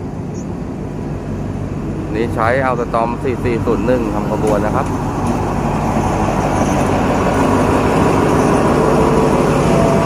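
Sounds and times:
diesel locomotive engine rumbling: 0.0 - 10.0.

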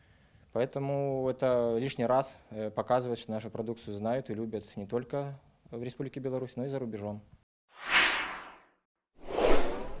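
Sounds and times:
bright swish: 7.7 - 10.0
deep whoosh: 7.8 - 10.0.

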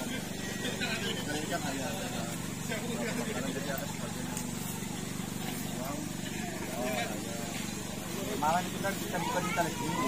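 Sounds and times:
motorcycle engine idling: 0.0 - 10.0
people talking: 0.0 - 10.0.

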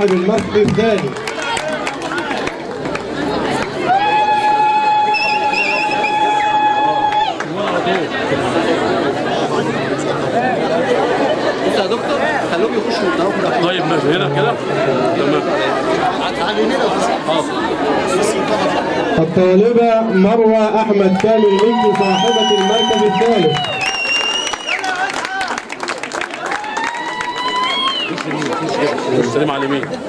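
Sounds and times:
audience chatter: 0.0 - 30.0.

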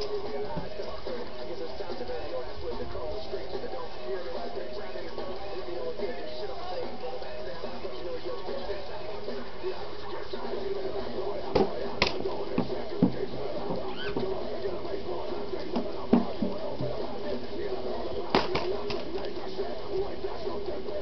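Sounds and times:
indistinct voices: 0.0 - 21.0
steady hum: 0.0 - 21.0.

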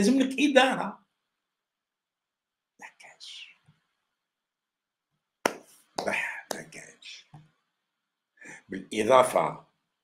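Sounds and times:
person whispering: 2.8 - 3.7, 6.0 - 7.4
sharp hand clap: 5.4 - 6.8.

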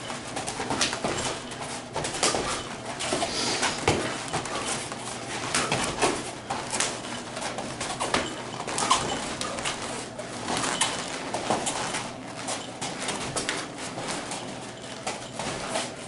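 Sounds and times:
feet thudding and scuffing on mats: 0.0 - 16.0.

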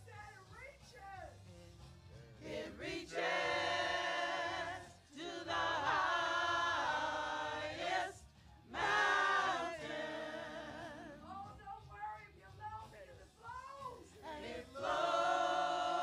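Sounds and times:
choir singing a hymn: 2.4 - 11.3, 14.2 - 16.0.

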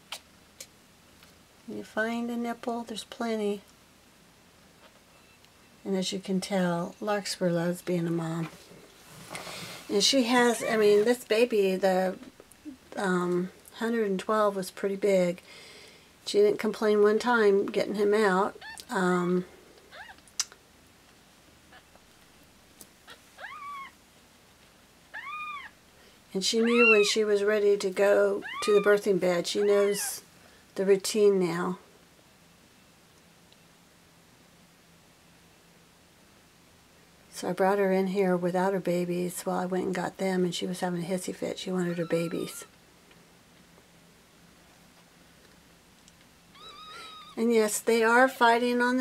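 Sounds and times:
kitten mewing: 23.1 - 23.9, 25.1 - 25.8, 26.6 - 27.1, 28.4 - 28.9, 46.6 - 47.4.

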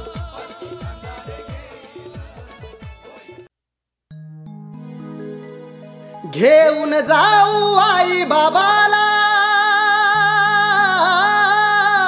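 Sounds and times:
wordless sung melody: 0.0 - 3.5, 4.6 - 12.0.

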